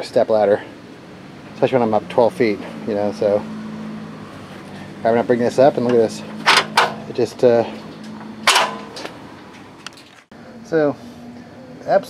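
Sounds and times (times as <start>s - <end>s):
metallic ladder lock clack: 5.8s - 7.1s, 8.0s - 9.2s
ladder hinge click: 8.0s - 9.2s.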